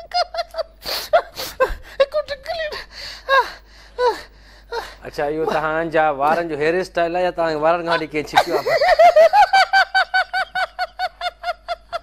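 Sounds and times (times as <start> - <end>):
person laughing rapidly: 7.9 - 12.0.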